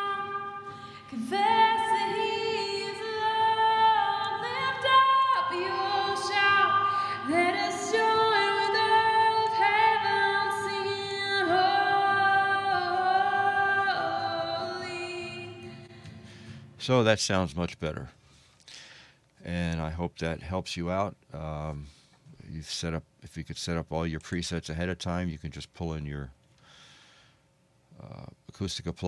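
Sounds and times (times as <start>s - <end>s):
solo singing with reverb: 0.0s - 16.2s.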